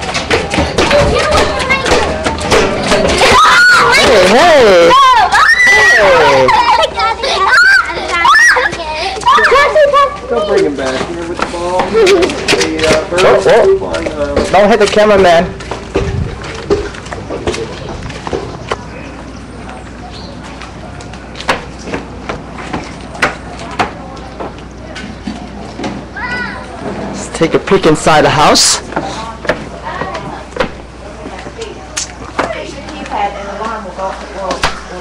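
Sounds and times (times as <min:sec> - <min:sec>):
sharp knocks: 0:00.0 - 0:03.4
faint voices: 0:00.0 - 0:35.0
young children calling out: 0:03.0 - 0:10.6, 0:26.1 - 0:26.8.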